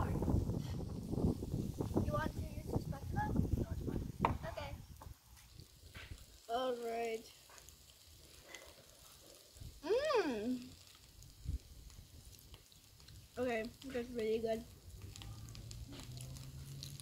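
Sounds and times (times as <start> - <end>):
person making sounds of enjoyment: 9.8 - 10.7.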